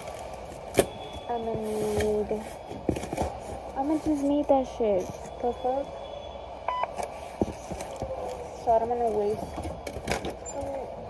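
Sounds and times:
short electronic beep: 5.3s - 7.0s.

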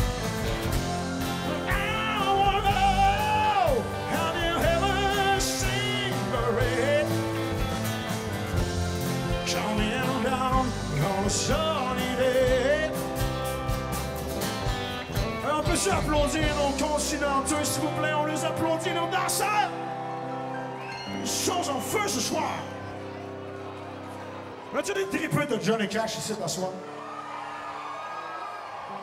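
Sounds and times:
drums: 0.0s - 18.9s
acoustic guitar: 0.0s - 24.4s
keyboard: 0.0s - 29.0s
person singing: 1.3s - 7.5s, 9.4s - 13.1s.

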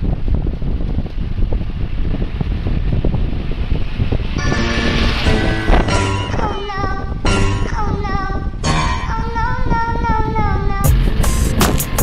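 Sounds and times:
wind buffeting microphone: 0.0s - 12.0s
steady pitched tones: 3.9s - 11.5s.

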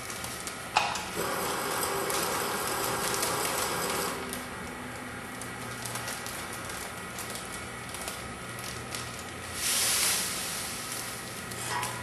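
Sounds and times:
feeder mechanical whirr: 0.0s - 12.0s
sugar pouring through chute: 0.0s - 12.0s.

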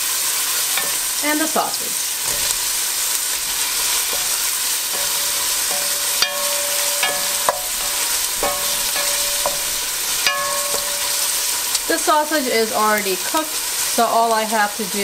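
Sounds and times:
food sizzling in oil: 0.0s - 15.0s
wooden spoon knocking pot: 0.8s - 1.2s, 2.3s - 11.8s
metal pot ringing: 0.8s - 1.6s, 2.2s - 12.2s.

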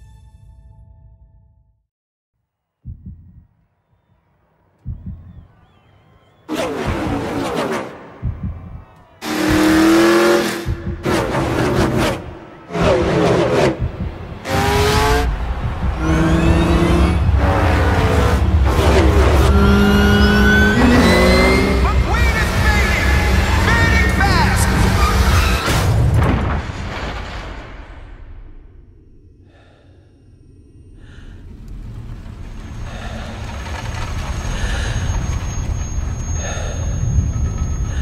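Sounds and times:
rising engine whines: 4.8s - 25.6s, 30.1s - 38.0s
racing engines revving and passing: 9.2s - 25.5s.

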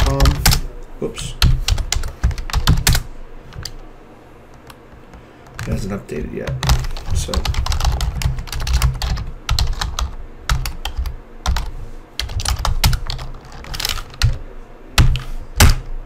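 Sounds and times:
computer keyboard typing: 0.0s - 0.7s, 1.4s - 3.8s, 6.5s - 14.4s, 15.0s - 15.9s.

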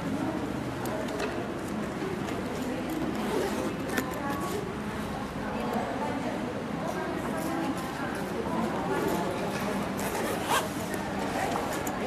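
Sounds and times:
zipper on a bag: 3.1s - 4.0s, 10.0s - 10.9s.

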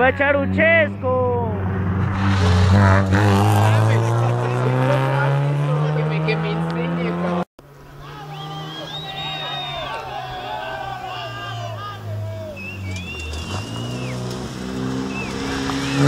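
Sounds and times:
rally car engine accelerating: 1.4s - 7.5s, 10.8s - 16.0s.

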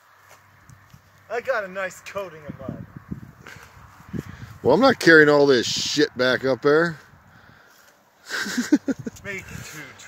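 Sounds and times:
person laughing breathily: 8.2s - 9.6s.

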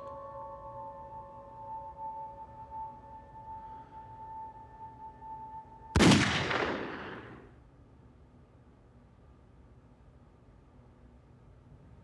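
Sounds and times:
high ringing tone: 0.0s - 6.1s
loud gunshot: 6.0s - 7.4s.

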